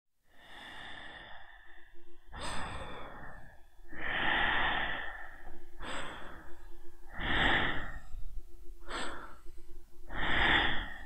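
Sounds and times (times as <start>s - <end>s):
person breathing heavily: 0.3s - 11.0s.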